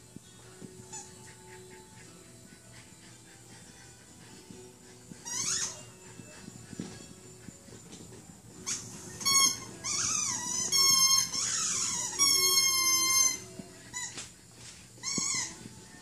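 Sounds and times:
squeaky dog toy squeaking: 0:00.9 - 0:01.5, 0:05.1 - 0:07.1, 0:08.6 - 0:14.2, 0:15.0 - 0:16.0.

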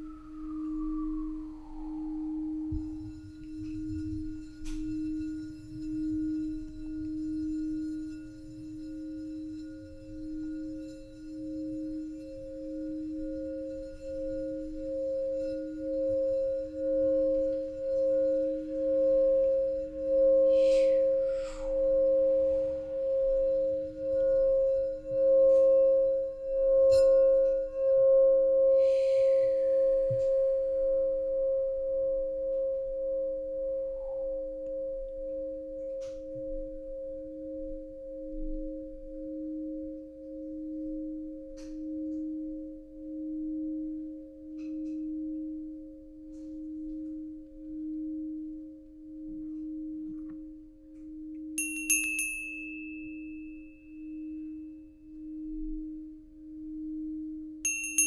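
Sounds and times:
crystal singing bowls: 0:00.0 - 0:58.0
brass hand bell ringing: 0:51.6 - 0:53.1, 0:57.7 - 0:58.0.

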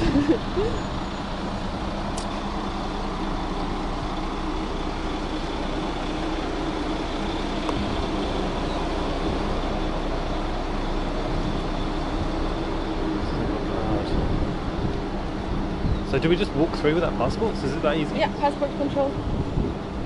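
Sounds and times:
road traffic engine hum: 0:00.0 - 0:20.0.

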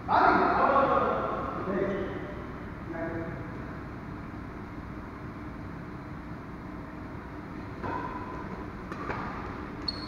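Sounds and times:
low rumble of hall background: 0:00.0 - 0:10.0
racket hitting shuttlecock: 0:07.8 - 0:09.4.

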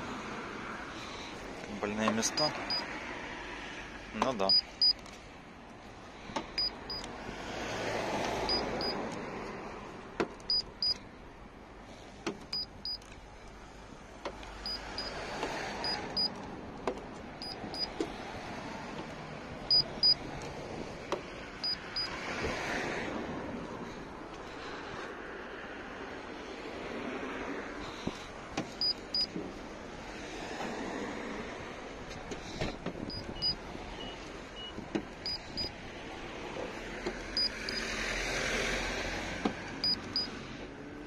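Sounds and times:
high double beep: 0:04.5 - 0:05.0, 0:19.7 - 0:20.2, 0:33.1 - 0:35.7, 0:37.4 - 0:37.8.

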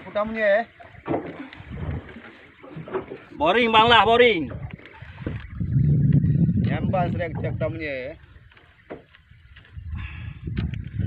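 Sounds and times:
low rumble: 0:04.4 - 0:07.8.

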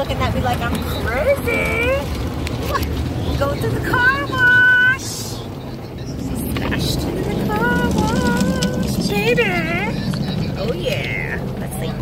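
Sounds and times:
car wash machinery rumbling: 0:00.0 - 0:12.0.

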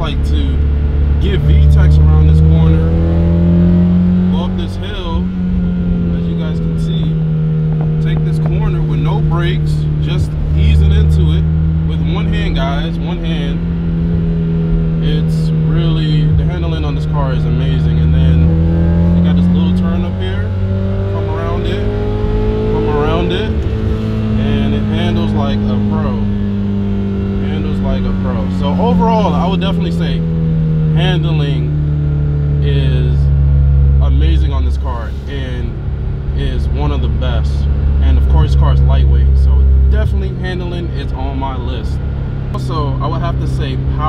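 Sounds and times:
car engine droning: 0:00.0 - 0:44.0
person talking: 0:01.2 - 0:02.8, 0:07.8 - 0:13.6, 0:15.0 - 0:18.5, 0:19.2 - 0:20.5, 0:21.2 - 0:22.0, 0:22.8 - 0:23.6, 0:24.4 - 0:26.3, 0:27.4 - 0:30.2, 0:31.0 - 0:31.7, 0:36.4 - 0:41.9, 0:42.6 - 0:44.0.

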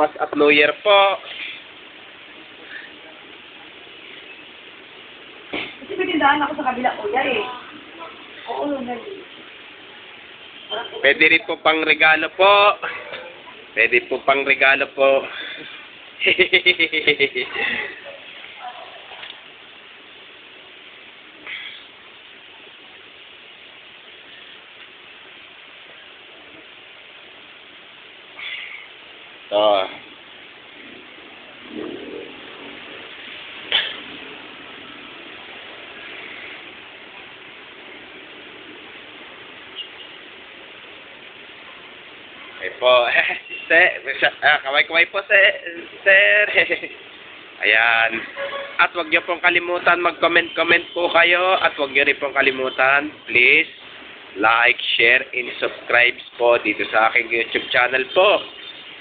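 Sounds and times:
shop floor background noise: 0:00.0 - 0:59.0.

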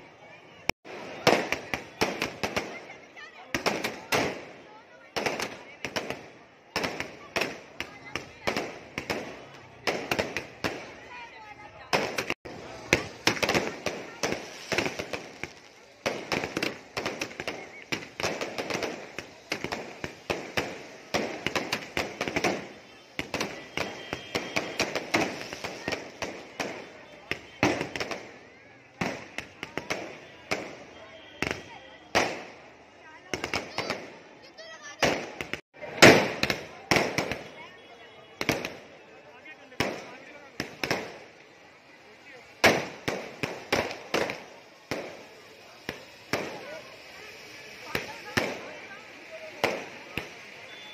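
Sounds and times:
fireworks bangs and crackling: 0:00.2 - 0:50.9.

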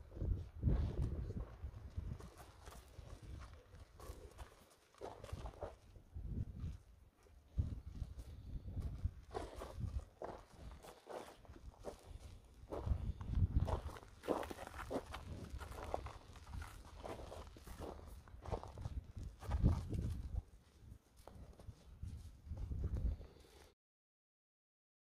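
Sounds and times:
hooves on gravelly dirt: 0:00.1 - 0:23.7
person's footsteps on gravel: 0:00.6 - 0:23.6.

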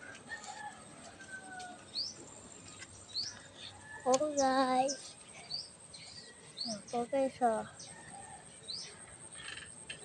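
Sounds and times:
birds chirping: 0:01.8 - 0:10.0.

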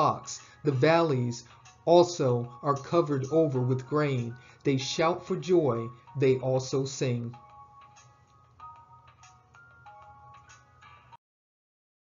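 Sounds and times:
soft background music: 0:00.0 - 0:11.2.

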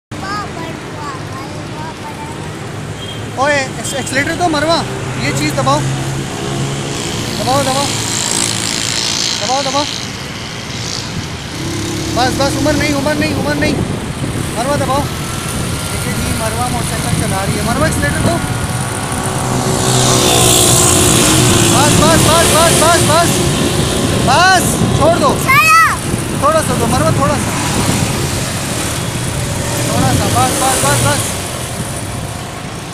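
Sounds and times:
wind and road noise: 0:00.1 - 0:32.9
motorcycle engine rumbling: 0:01.8 - 0:32.9
child calling out: 0:25.4 - 0:26.1.

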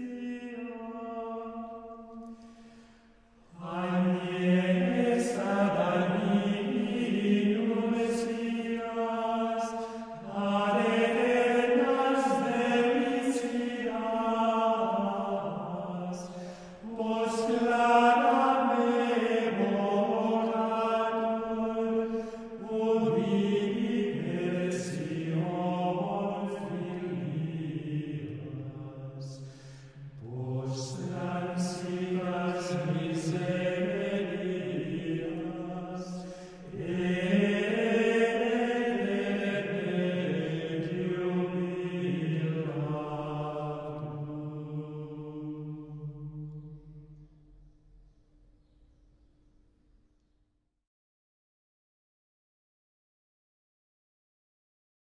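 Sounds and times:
men singing plainchant: 0:30.2 - 0:45.8.

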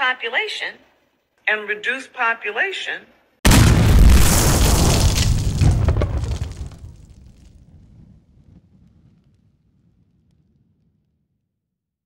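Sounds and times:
explosion boom rumbling: 0:03.5 - 0:09.9
scattered crackles: 0:03.5 - 0:10.6.

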